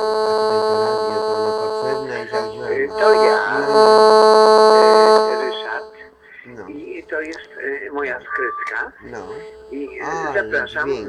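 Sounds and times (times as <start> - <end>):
pulsing buzzing electronic chord: 0.0 - 7.2, 9.0 - 11.0
people talking: 0.4 - 11.0.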